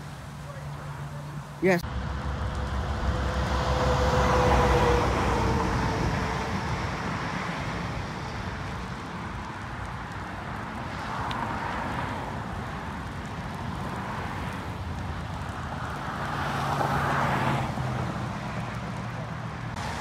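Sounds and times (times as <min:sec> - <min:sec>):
vehicle passing on highway: 0:00.0 - 0:20.0.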